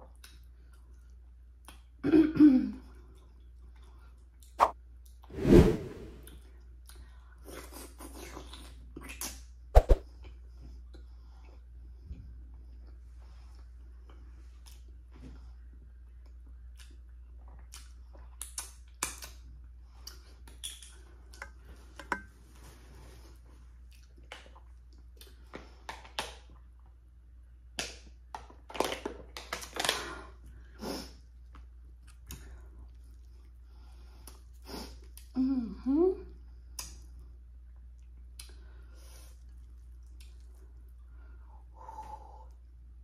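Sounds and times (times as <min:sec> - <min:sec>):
wet mouth smacks and chewing: 0:16.2 - 0:21.4, 0:23.9 - 0:26.9, 0:36.7 - 0:37.1, 0:38.0 - 0:38.6, 0:39.4 - 0:40.8.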